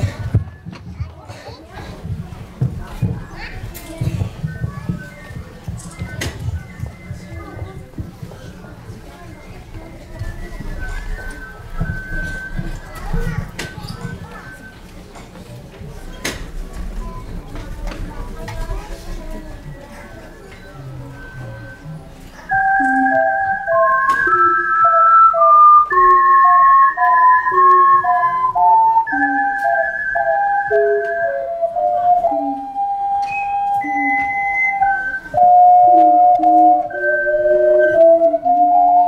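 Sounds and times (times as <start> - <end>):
murmuring voices: 0.0 - 39.0
ocarinas playing a melody: 2.8 - 39.0.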